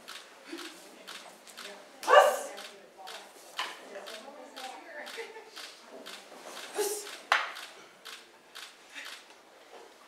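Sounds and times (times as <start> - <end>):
person shouting kiai: 2.0 - 2.5.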